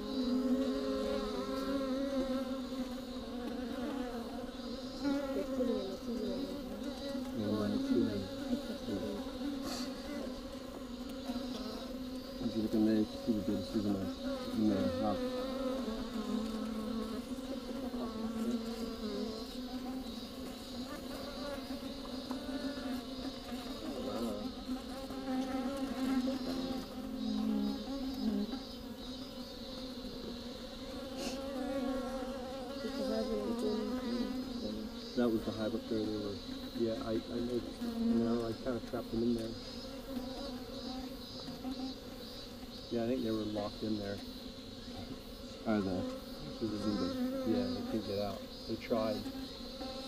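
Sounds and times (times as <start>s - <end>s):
bees buzzing: 0.0s - 50.0s.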